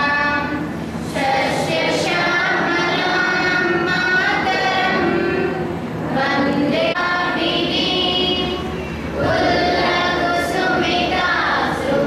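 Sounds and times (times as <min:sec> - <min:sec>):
group singing in unison: 0:00.0 - 0:12.0.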